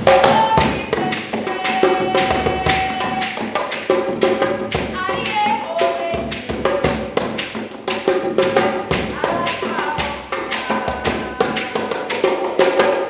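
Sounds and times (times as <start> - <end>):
woman singing: 0.0 - 3.8, 4.8 - 7.1, 8.9 - 13.0.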